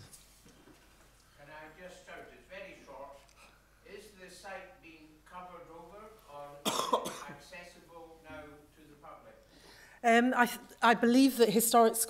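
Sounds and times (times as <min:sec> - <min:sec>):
sharp cough: 0:06.6 - 0:07.4.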